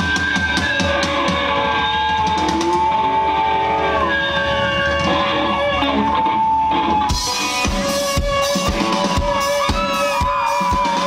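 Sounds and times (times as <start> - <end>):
rock band sustained chord: 0.0 - 11.0.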